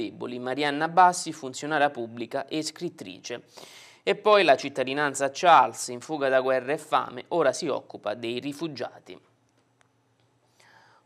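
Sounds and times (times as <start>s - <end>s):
man speaking: 0.0s - 9.3s
soft intake of breath: 3.5s - 4.0s, 10.4s - 11.0s.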